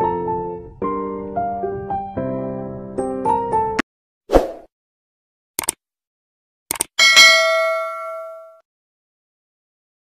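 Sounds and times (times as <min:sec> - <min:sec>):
notification bell ding: 0:07.0 - 0:08.6.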